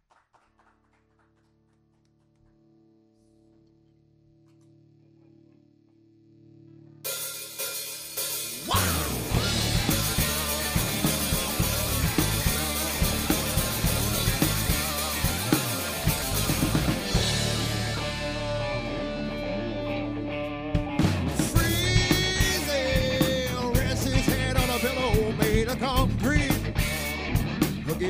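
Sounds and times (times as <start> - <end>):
drum and cymbal hits: 7.1 - 18.5
live rock band: 7.1 - 28.0.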